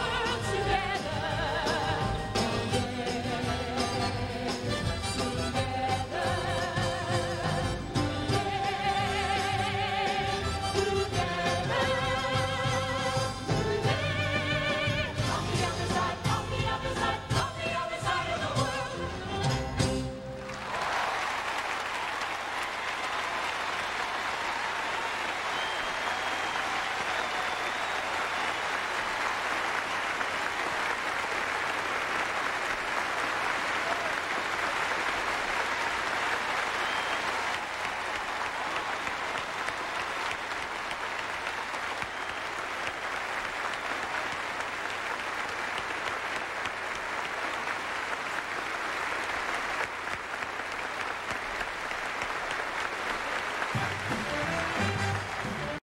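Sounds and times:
audience applauding: 20.3s - 55.8s.

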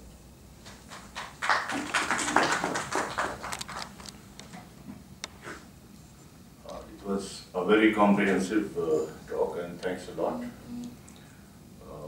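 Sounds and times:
audience applause: 0.7s - 4.0s.

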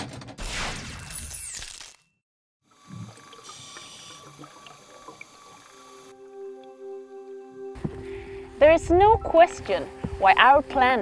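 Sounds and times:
underwater hiss: 2.8s - 6.1s.

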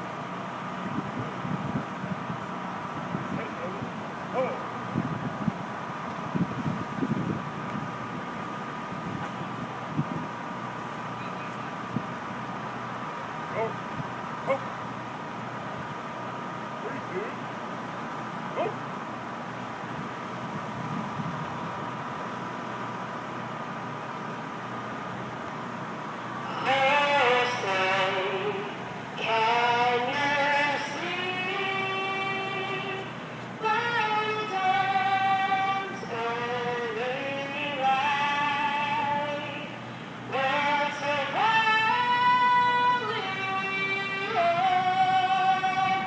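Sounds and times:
steady high-pitched hum: 0.0s - 46.0s.

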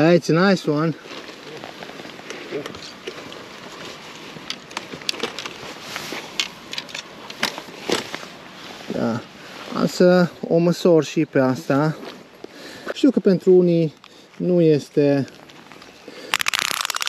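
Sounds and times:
landing net crackling and rustling: 0.7s - 9.9s, 15.0s - 17.0s.

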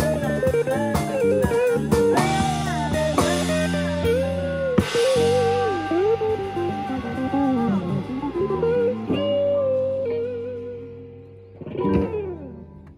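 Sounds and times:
live rock band: 0.0s - 12.7s
electric guitar single notes: 0.0s - 12.9s.

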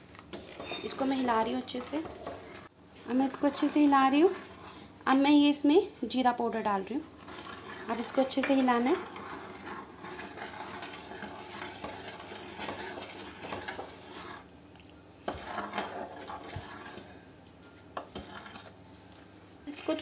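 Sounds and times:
metal ladle scraping a pan: 0.3s - 4.9s, 6.9s - 14.5s, 15.3s - 17.3s, 18.0s - 18.8s.

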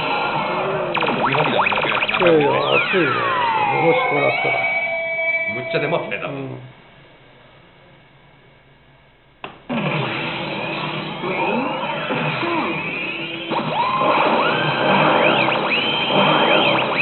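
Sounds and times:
electronic music with synth sweeps: 1.0s - 4.9s, 15.1s - 17.0s.

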